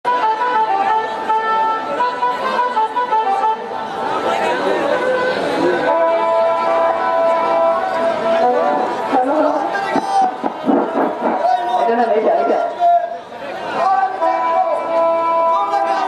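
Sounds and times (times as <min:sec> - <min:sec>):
audience chatter: 0:00.1 - 0:16.0.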